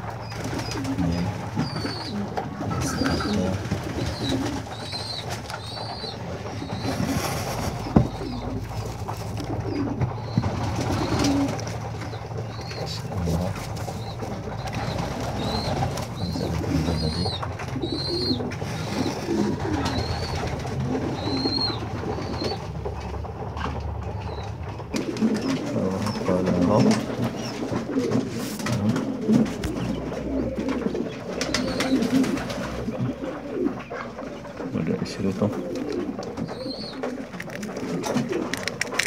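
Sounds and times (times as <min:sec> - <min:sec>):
pigeons cooing: 0:00.0 - 0:39.0
quail chicks peeping: 0:00.0 - 0:39.0.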